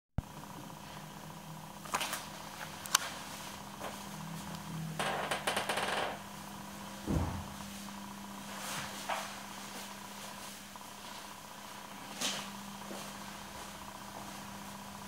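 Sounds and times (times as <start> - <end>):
faint steady hum: 0.2 - 15.0
low thump: 7.1 - 7.5.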